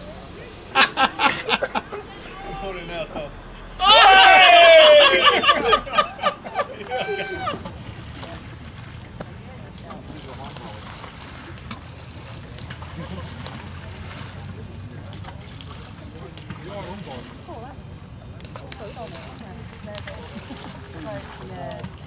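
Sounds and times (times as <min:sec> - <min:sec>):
faint distant voices: 0:00.0 - 0:22.0.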